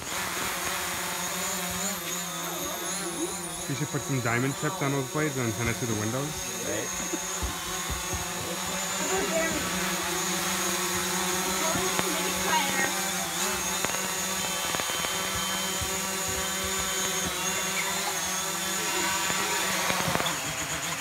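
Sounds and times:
drone propellers buzzing: 0:00.0 - 0:21.0.

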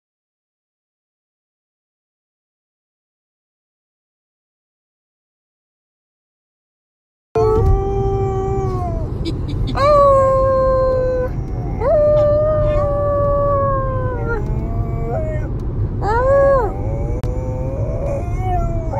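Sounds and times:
dog howling: 0:07.4 - 0:09.1, 0:09.7 - 0:18.9
car cabin rumble: 0:07.4 - 0:18.9.

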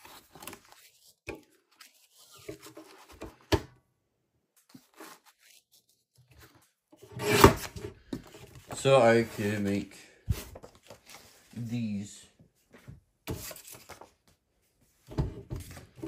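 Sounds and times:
paper sheets rustling: 0:04.6 - 0:06.8, 0:08.2 - 0:11.7, 0:13.3 - 0:14.4.

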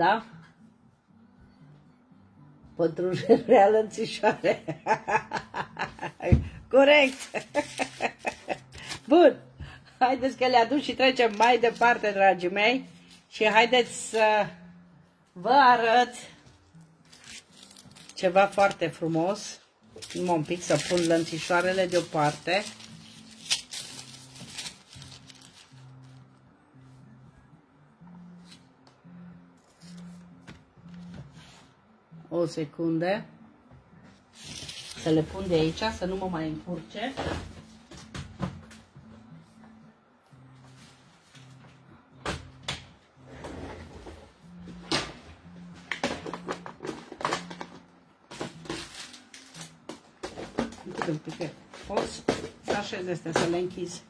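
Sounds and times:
soft background music: 0:00.0 - 0:54.0.

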